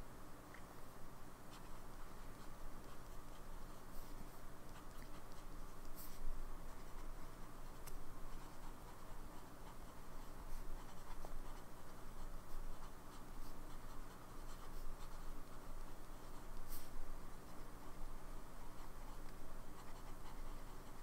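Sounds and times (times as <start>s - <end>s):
small faint clicks: 0.5s - 0.8s
fountain pen scratching on paper: 1.5s - 21.0s.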